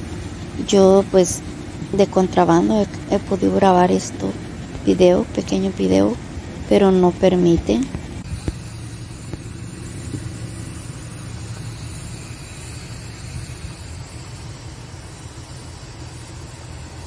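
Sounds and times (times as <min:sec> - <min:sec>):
light hiss: 0:00.0 - 0:17.0
steady low rumble: 0:00.0 - 0:17.0.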